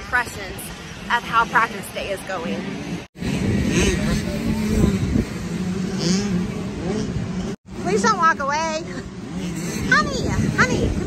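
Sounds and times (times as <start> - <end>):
motocross bike engines: 0.0 - 11.0
wind buffeting microphone: 1.5 - 11.0.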